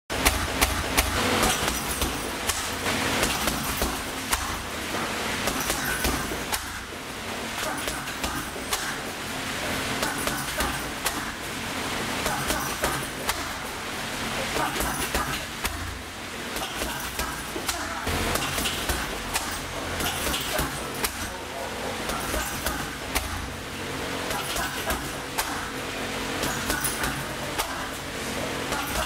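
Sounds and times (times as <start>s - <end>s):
punches thudding on heavy bag: 0.2s - 4.7s, 5.4s - 6.9s, 22.1s - 23.5s.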